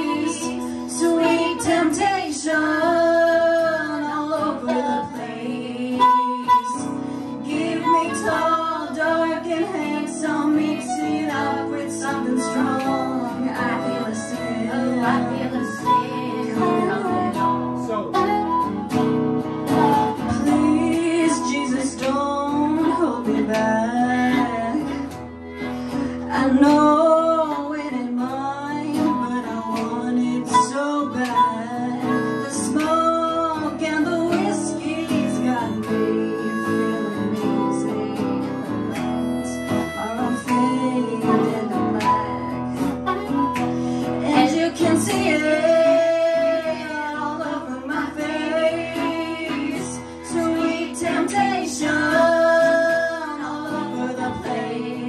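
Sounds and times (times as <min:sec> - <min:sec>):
woman singing: 0:00.0 - 0:19.0, 0:19.6 - 0:25.4, 0:26.2 - 0:55.0
guitar: 0:00.0 - 0:55.0.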